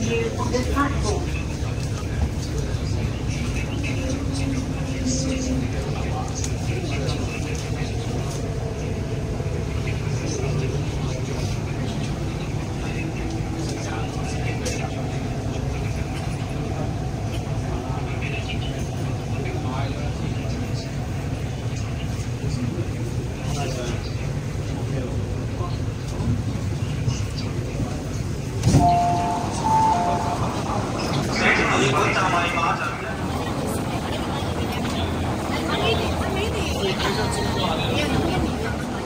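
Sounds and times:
faint voices: 0.0s - 39.0s
train running gear rumble: 0.0s - 39.0s.

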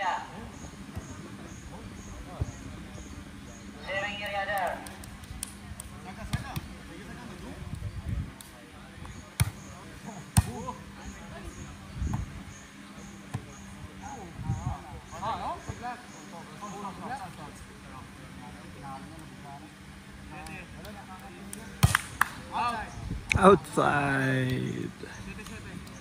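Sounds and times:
hands slapping volleyball: 20.3s - 22.4s
player shouting: 23.3s - 25.0s.

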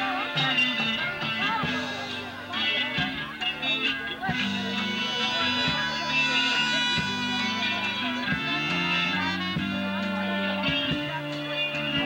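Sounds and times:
drums steady beat: 0.0s - 12.0s
electric guitar: 0.0s - 12.0s
horns playing: 0.0s - 12.0s.

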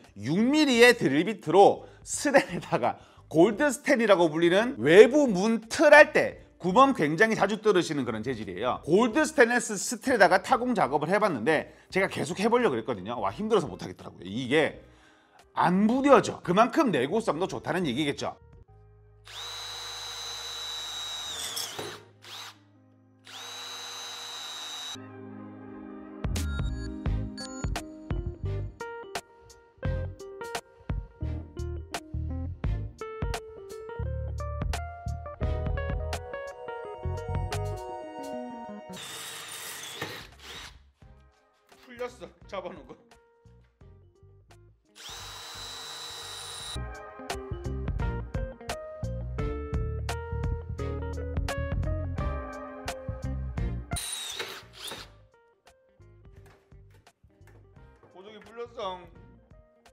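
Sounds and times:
background music: 0.0s - 20.9s, 21.5s - 59.9s
cordless drill whining into metal: 19.3s - 22.6s, 23.3s - 25.0s, 39.0s - 40.8s, 45.0s - 46.8s, 54.0s - 55.2s
guitar music: 35.3s - 39.0s, 46.8s - 54.0s.

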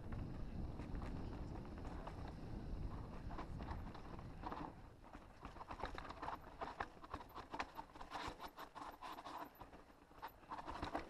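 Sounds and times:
low wind rumble on microphone: 0.0s - 8.9s
bike clicks and rattles: 0.0s - 11.0s.

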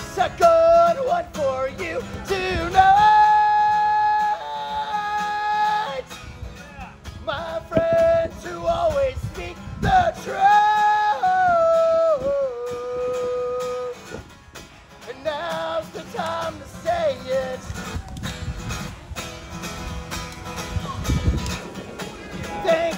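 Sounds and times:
man singing: 0.0s - 6.2s, 7.2s - 14.2s, 15.0s - 18.0s, 22.2s - 22.9s
acoustic guitar: 0.0s - 22.9s.

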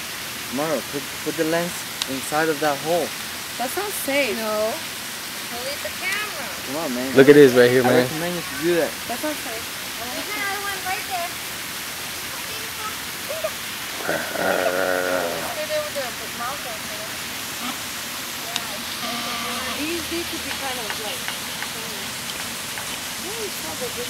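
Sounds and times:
steady hiss: 0.0s - 24.0s.

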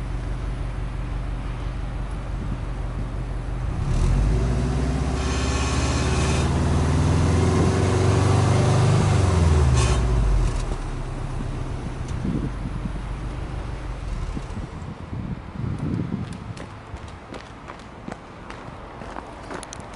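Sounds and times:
car engine idling and revving: 0.0s - 16.5s.

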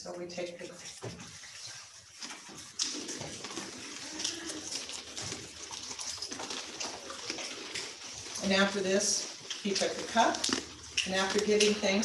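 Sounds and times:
woman speaking: 0.0s - 0.9s, 8.4s - 12.0s.

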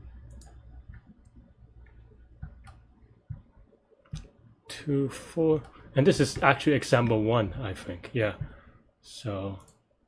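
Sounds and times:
low steady hum: 0.0s - 10.0s
computer mouse and key clicks: 0.2s - 4.3s.

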